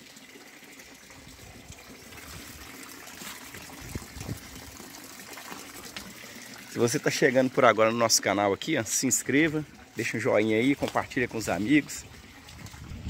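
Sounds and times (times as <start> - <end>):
running water rushing: 0.0 - 13.0.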